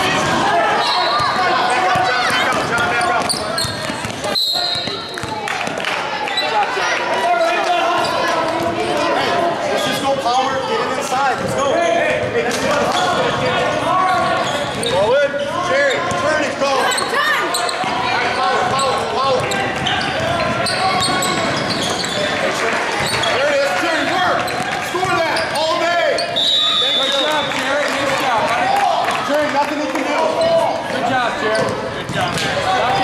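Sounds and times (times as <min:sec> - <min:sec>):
voices of players and spectators: 0:00.0 - 0:33.0.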